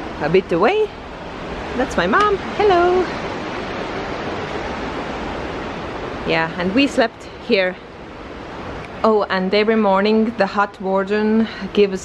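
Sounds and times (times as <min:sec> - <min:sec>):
rushing outdoor background noise: 0:00.0 - 0:12.0.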